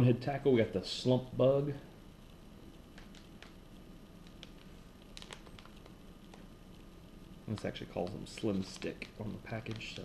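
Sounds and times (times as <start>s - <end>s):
steady low hum: 0.0s - 10.0s
plastic package crinkling: 3.0s - 3.6s, 4.2s - 6.5s, 7.5s - 10.0s.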